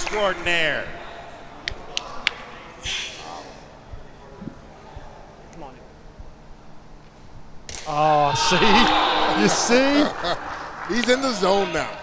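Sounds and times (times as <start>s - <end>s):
short hiss: 2.8s - 3.6s.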